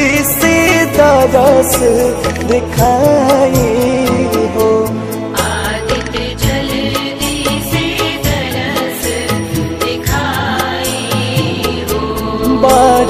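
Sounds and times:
devotional song with steady beat: 0:00.0 - 0:13.0.

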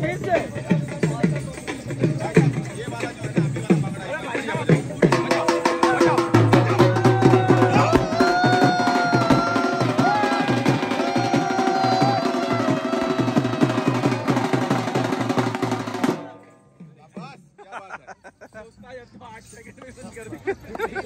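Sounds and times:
dhol drum beating fast rhythm: 0:00.0 - 0:18.1.

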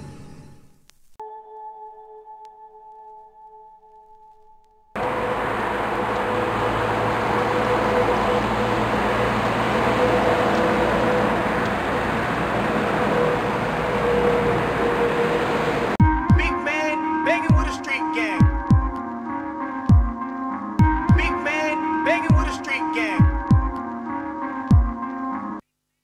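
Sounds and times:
train running on rails: 0:05.0 - 0:16.0.

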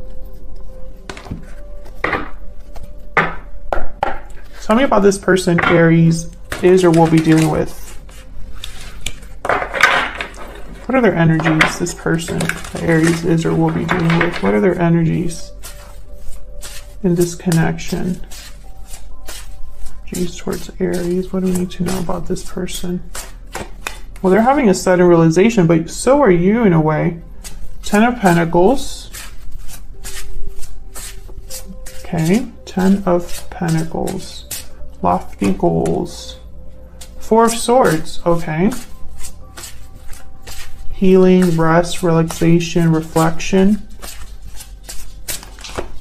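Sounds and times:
cards being shuffled: 0:01.0 - 0:04.5, 0:05.6 - 0:14.8, 0:15.6 - 0:24.6, 0:29.1 - 0:36.1, 0:37.0 - 0:46.0.

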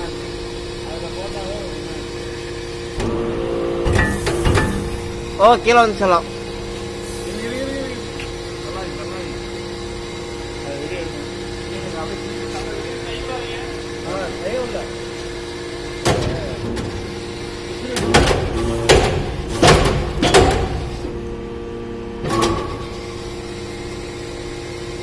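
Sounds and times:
press humming: 0:00.0 - 0:25.0.

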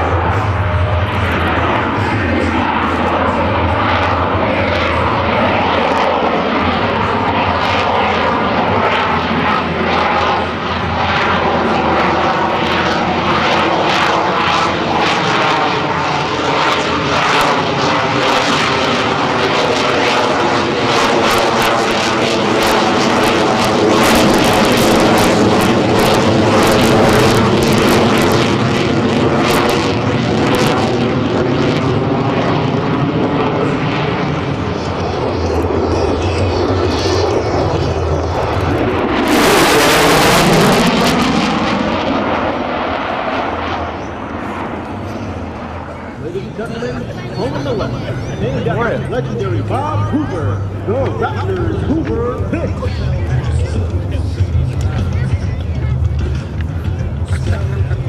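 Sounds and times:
fighter jet engines roaring: 0:00.0 - 0:58.0.

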